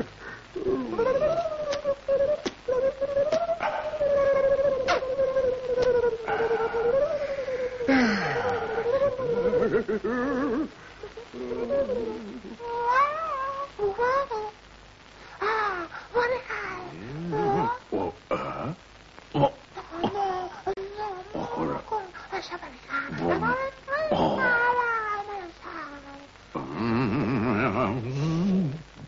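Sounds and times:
lower voice: 0:00.0 - 0:14.5, 0:16.5 - 0:18.4, 0:23.1 - 0:24.9, 0:26.5 - 0:29.0
meow-like cartoon voice: 0:11.3 - 0:14.5, 0:16.6 - 0:17.8.

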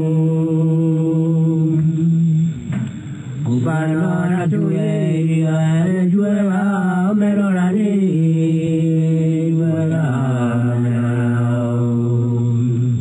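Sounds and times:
low chanting: 0:00.0 - 0:13.0.

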